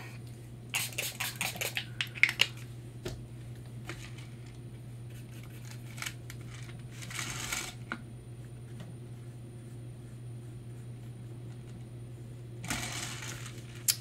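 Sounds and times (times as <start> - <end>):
steady low hum: 0.0 - 14.0
spray bottle spritzing: 0.8 - 1.8.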